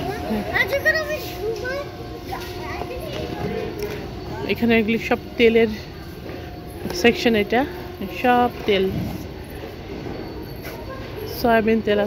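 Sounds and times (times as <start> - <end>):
warehouse store rumbling noise: 0.0 - 12.0.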